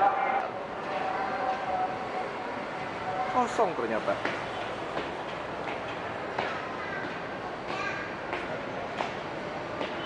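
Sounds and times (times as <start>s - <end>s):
metro station background noise: 0.0s - 10.0s
footsteps on stairs: 4.2s - 10.0s.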